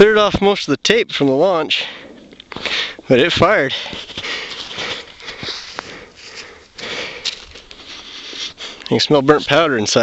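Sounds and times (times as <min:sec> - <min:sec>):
man sniffing: 0:03.8 - 0:08.9.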